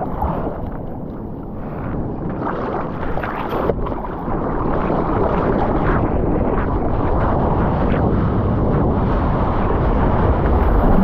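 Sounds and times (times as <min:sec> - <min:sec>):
rush of water: 0:00.0 - 0:11.0.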